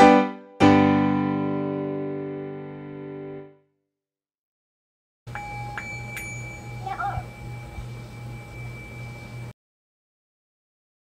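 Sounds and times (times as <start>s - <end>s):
singing bowl ringing: 5.3s - 9.6s.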